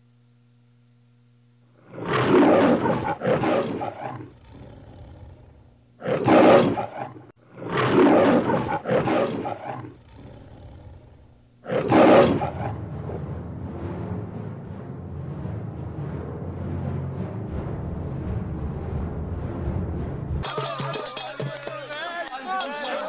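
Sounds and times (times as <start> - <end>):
lion roaring: 1.8 - 14.4.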